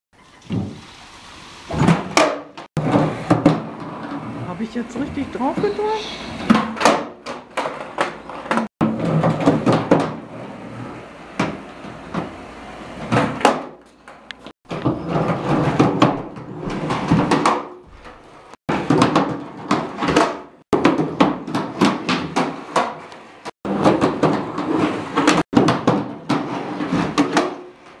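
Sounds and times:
skateboard trucks scraping metal edge: 0:01.7 - 0:28.0
skateboard deck clacking: 0:13.1 - 0:16.4, 0:18.7 - 0:27.8.

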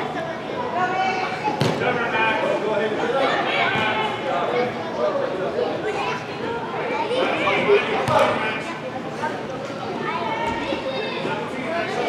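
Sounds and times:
spectators and players calling out: 0:00.0 - 0:12.0.

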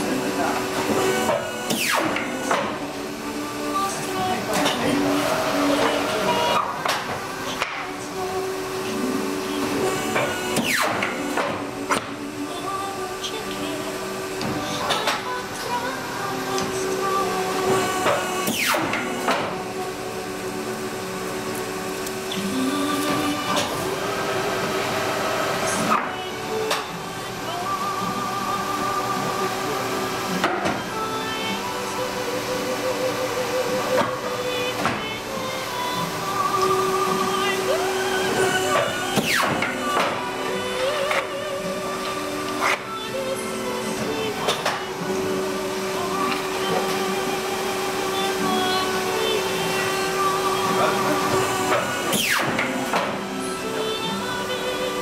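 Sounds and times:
background music: 0:00.0 - 0:55.0
paper cutter motor hum: 0:00.0 - 0:55.0.

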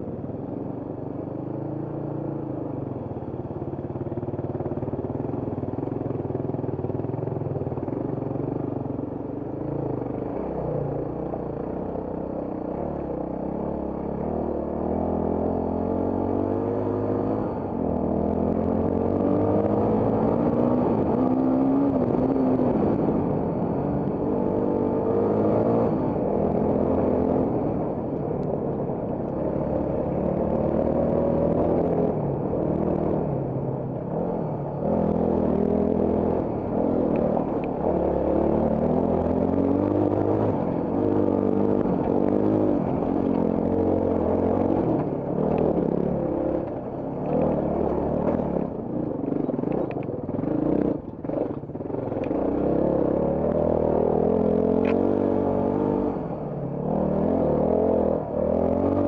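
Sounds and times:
motorcycle engine revving: 0:12.5 - 0:28.4, 0:29.2 - 0:59.0.

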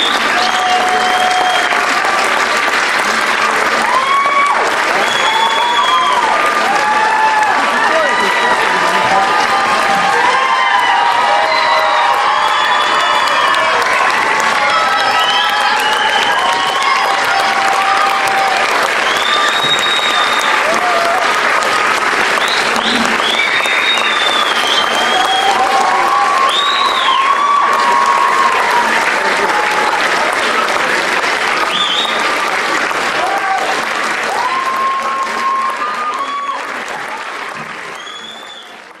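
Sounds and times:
audience applauding: 0:00.0 - 0:39.0
whoops and shouts: 0:00.1 - 0:01.9, 0:03.8 - 0:21.3, 0:22.4 - 0:29.9, 0:34.3 - 0:36.7.

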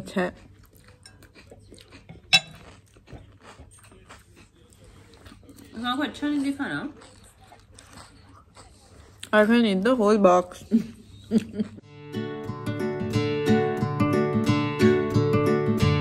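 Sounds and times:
chewing and mouth clicks: 0:00.0 - 0:09.8
woman's voice: 0:05.8 - 0:07.0, 0:09.3 - 0:11.0.

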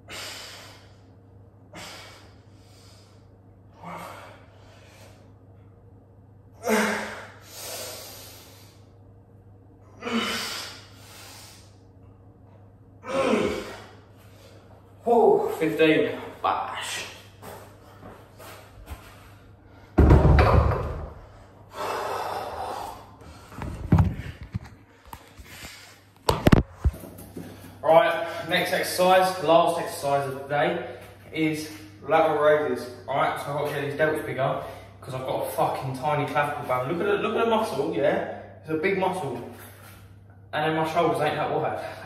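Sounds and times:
man breathing hard: 0:00.0 - 0:05.3, 0:06.6 - 0:09.0, 0:10.0 - 0:11.8, 0:21.2 - 0:26.1
man gasping and grunting: 0:06.6 - 0:07.4, 0:13.0 - 0:14.0
man exhaling heavily: 0:13.0 - 0:14.0.

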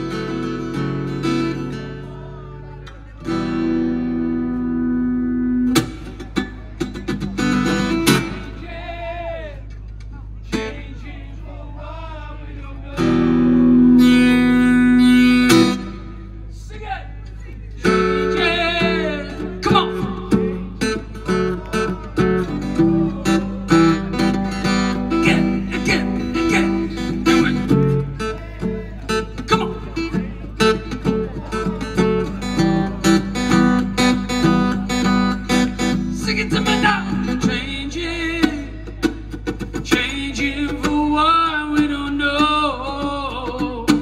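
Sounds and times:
acoustic guitar strumming: 0:00.0 - 0:09.4, 0:12.9 - 0:16.5, 0:17.8 - 0:44.0.

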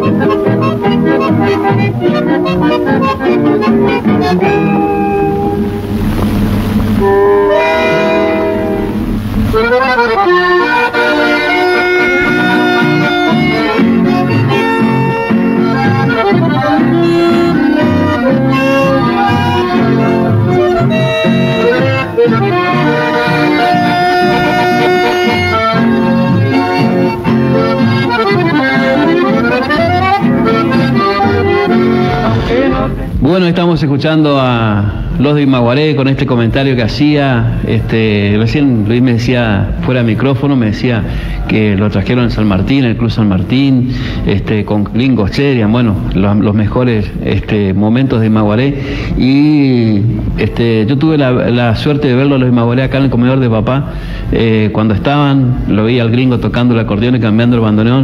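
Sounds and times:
accordion-led folk music: 0:00.0 - 0:33.3, 0:34.8 - 0:58.0
low rumble: 0:05.1 - 0:10.2.

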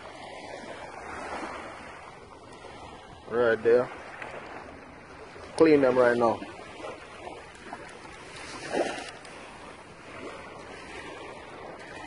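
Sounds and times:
small waves washing on shore: 0:00.0 - 0:12.0.

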